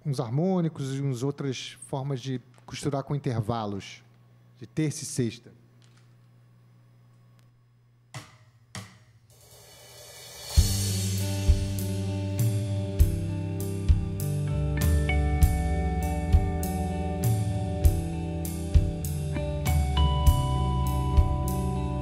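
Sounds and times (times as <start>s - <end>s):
drum kit beat: 8.1s - 21.9s
cymbal swell: 9.3s - 12.1s
electric guitar harmonics: 10.6s - 22.0s.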